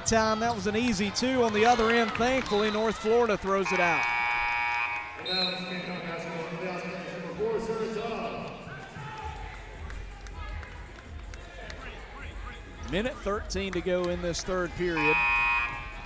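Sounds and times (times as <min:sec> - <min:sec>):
voices and crowd murmur: 0:05.2 - 0:16.0.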